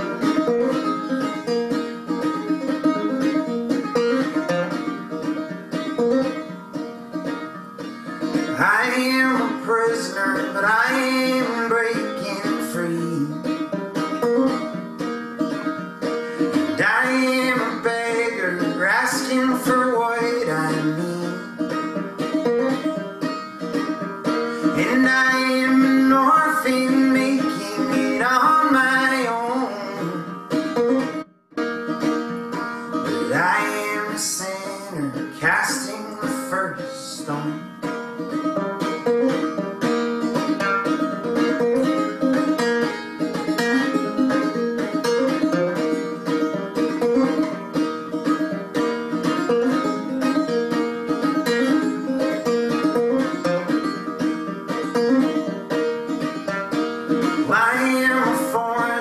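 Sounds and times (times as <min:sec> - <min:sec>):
banjo picking: 0:00.0 - 0:59.0
man singing: 0:08.3 - 0:13.7, 0:16.3 - 0:21.9, 0:24.3 - 0:30.6, 0:32.9 - 0:38.0, 0:57.2 - 0:59.0.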